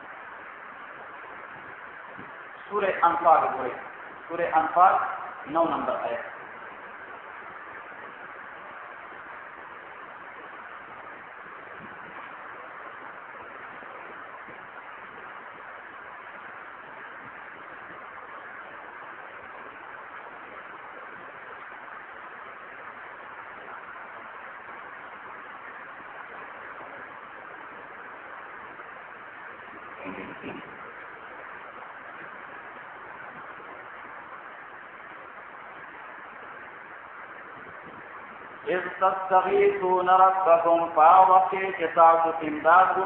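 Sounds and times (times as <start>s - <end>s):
steady recording hiss: 0.0s - 43.0s.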